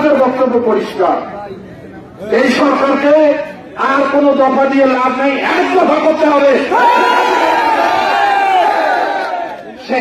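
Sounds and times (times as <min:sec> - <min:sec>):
crowd shouting in unison: 0:06.6 - 0:09.6.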